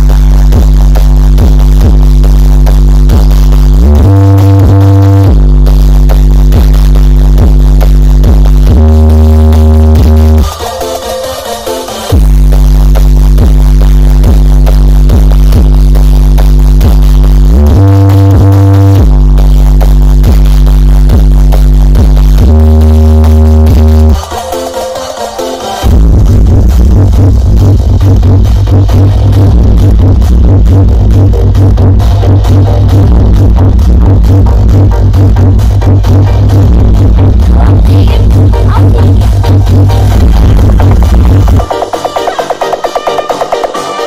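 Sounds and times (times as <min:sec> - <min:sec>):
loud electronic dance music: 0:00.0 - 0:44.0.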